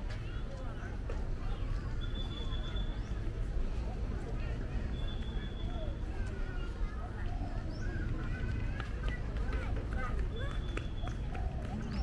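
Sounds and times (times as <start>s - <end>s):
passersby talking: 0.0s - 12.0s.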